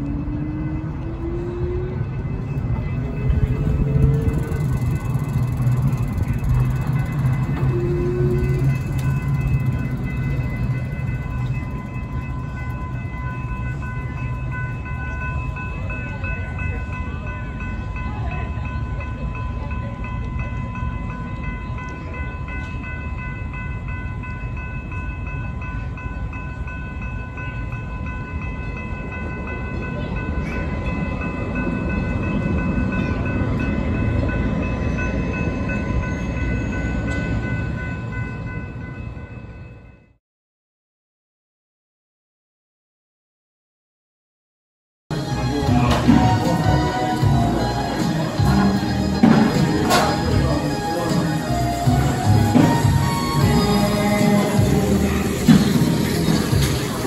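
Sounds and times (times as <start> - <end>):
train rumble: 0.0 - 39.9, 45.1 - 57.0
crossing bell ringing: 0.0 - 40.2, 45.1 - 57.0.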